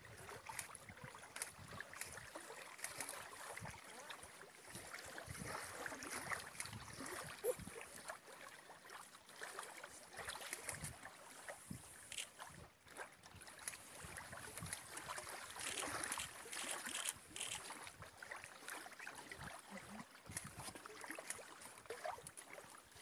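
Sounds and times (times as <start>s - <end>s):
small waves lapping rocky shore: 0.0s - 23.0s
wind: 0.0s - 23.0s.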